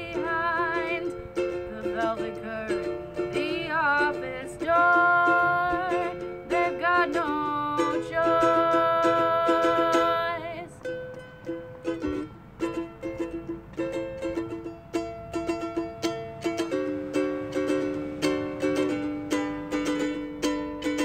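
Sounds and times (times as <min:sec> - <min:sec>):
ukulele strumming chords: 0:00.0 - 0:21.0.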